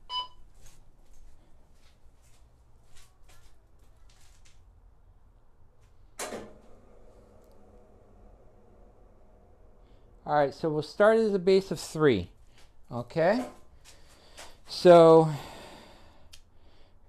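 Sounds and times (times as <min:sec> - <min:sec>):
faint steady hum: 0:00.0 - 0:17.0
short electronic beep: 0:00.1 - 0:00.4.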